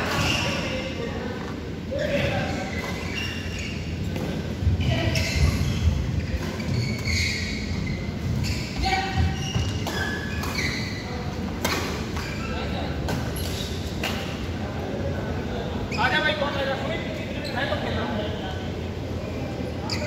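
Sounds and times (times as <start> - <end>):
shoe squeaks: 0.0 - 0.9, 2.4 - 4.2, 4.8 - 11.4, 12.1 - 14.0, 15.8 - 16.5, 19.3 - 20.0.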